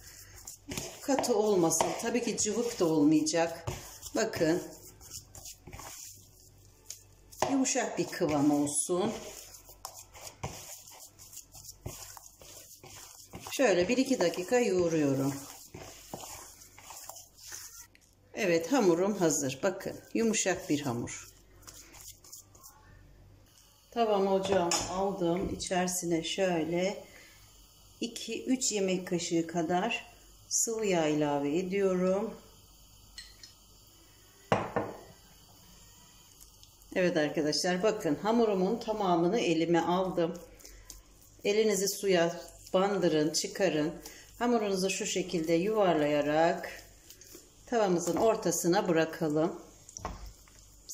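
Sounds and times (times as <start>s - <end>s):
hands kneading soft dough: 0.0s - 23.0s, 38.0s - 50.9s.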